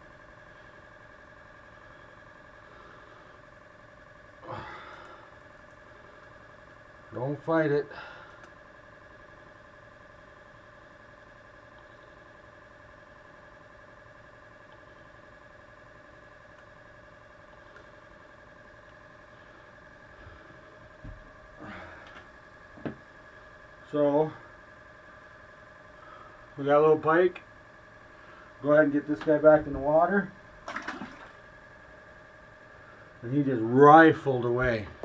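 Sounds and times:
faint steady hum: 0:00.0 - 0:35.0.

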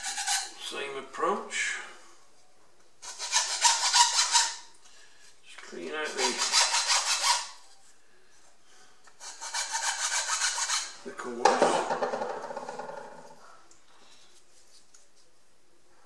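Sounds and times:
hand file rasping on wood: 0:00.0 - 0:00.5, 0:03.0 - 0:04.6, 0:06.1 - 0:07.6, 0:09.2 - 0:11.0.

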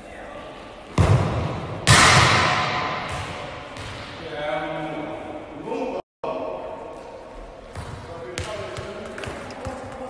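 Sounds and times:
ball bouncing on floor: 0:07.7 - 0:10.0.

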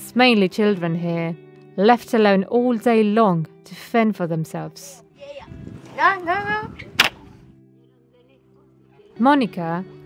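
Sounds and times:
sharp crack: 0:06.8 - 0:07.4.

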